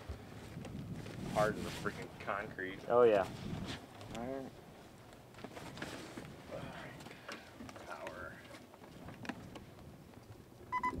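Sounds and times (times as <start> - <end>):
two-tone beep: 10.7 - 11.0.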